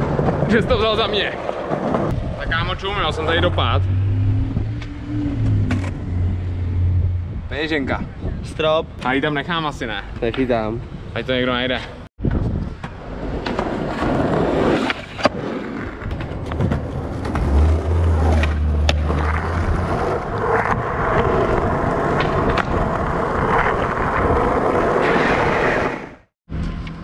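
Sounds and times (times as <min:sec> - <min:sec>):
skateboard wheels rolling on asphalt: 0:00.0 - 0:03.8, 0:04.6 - 0:07.0, 0:10.0 - 0:27.0
low hum: 0:02.1 - 0:08.4.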